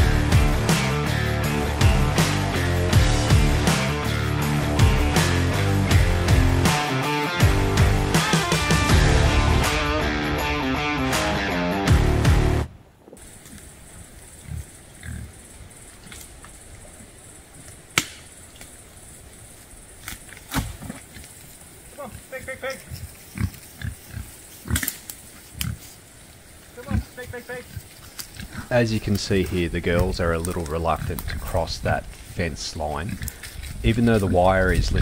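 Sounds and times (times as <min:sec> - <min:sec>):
rock guitar music: 0:00.0 - 0:12.7
pigs grunting: 0:14.3 - 0:16.2, 0:21.9 - 0:26.0, 0:26.7 - 0:31.8, 0:32.7 - 0:35.0
debris cracking underfoot: 0:27.8 - 0:35.0.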